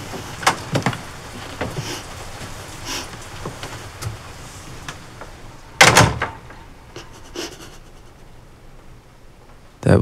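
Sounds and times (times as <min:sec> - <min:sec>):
door shutting: 0:00.0 - 0:02.0, 0:04.8 - 0:06.7.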